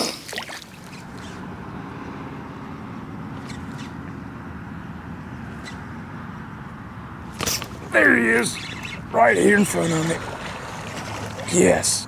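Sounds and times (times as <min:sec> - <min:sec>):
water splash: 0:00.0 - 0:01.3, 0:09.6 - 0:11.7.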